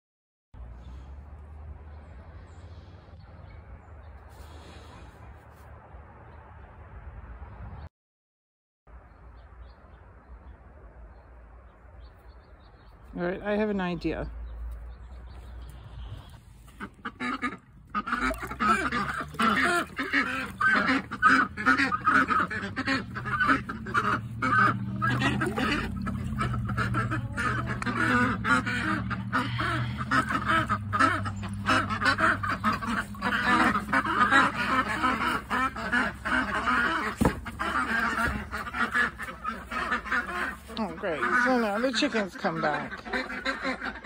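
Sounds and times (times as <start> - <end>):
ducks quacking: 15.4 - 44.0.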